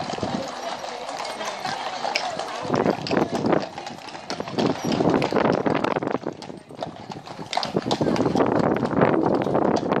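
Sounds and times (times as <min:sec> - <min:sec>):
horses hooves on tarmac: 0:00.0 - 0:10.0.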